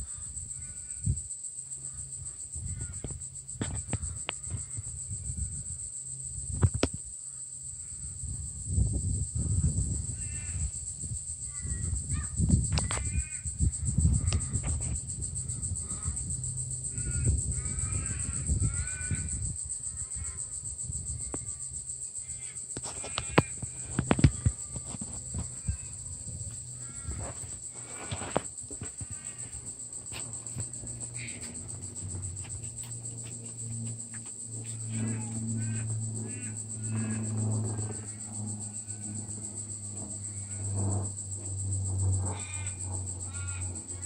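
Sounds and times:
crow cawing: 0.0s - 1.0s, 2.7s - 3.1s, 10.2s - 10.6s, 11.5s - 12.3s, 13.0s - 13.5s, 15.8s - 16.2s, 16.9s - 19.4s, 22.2s - 24.8s, 25.4s - 32.9s, 33.5s - 39.2s, 42.3s - 44.0s
high insect drone: 0.0s - 44.0s
low microphone rumble: 8.0s - 21.6s, 23.6s - 44.0s.

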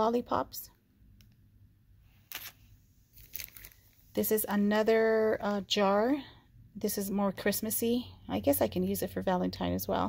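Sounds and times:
plastic sleeve crinkle-click: 3.2s - 3.9s.

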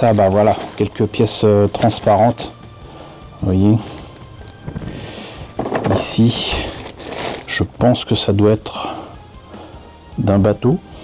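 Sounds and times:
plastic bags rustling and clattering: 0.0s - 2.5s, 3.8s - 8.1s
light background music: 0.0s - 11.0s.

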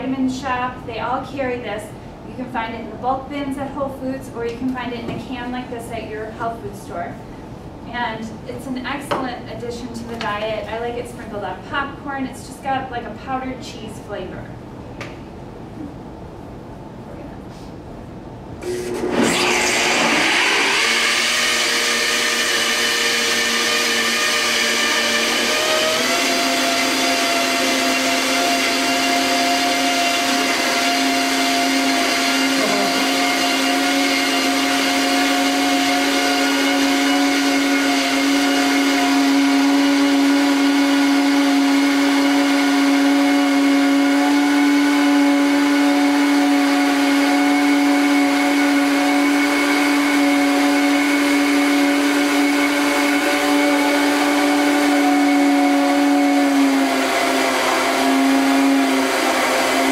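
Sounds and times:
blender motor whine: 18.6s - 59.9s.

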